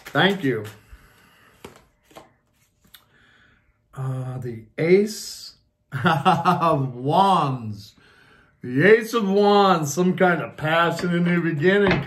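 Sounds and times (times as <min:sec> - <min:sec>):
cards being shuffled: 0:00.0 - 0:03.0.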